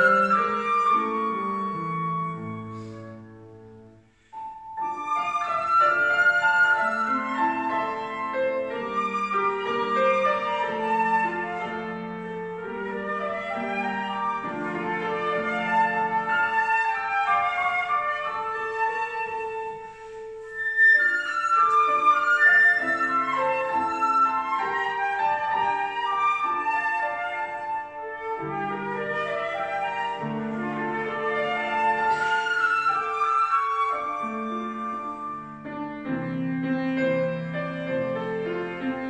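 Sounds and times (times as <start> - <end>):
flute melody: 0.0 - 39.0
piano chords: 0.0 - 39.0.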